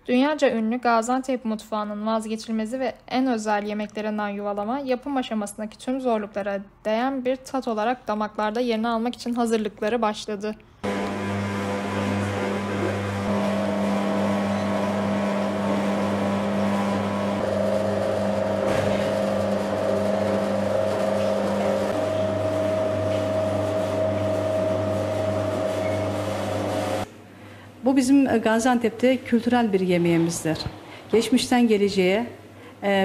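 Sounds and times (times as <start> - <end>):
electric machine humming: 10.8 - 27.1.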